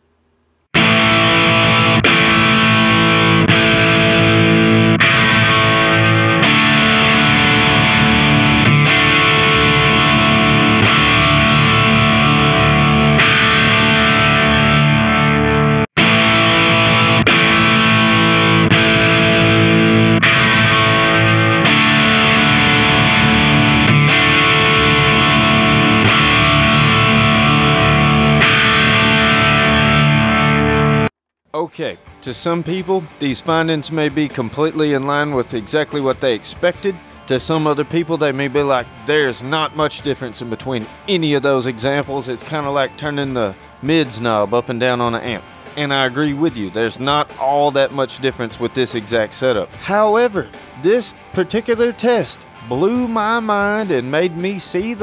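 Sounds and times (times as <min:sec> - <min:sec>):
overdriven electric guitar chords: 0:00.8 - 0:31.1, 0:36.9 - 0:39.8, 0:41.8 - 0:48.0, 0:49.4 - 0:55.0.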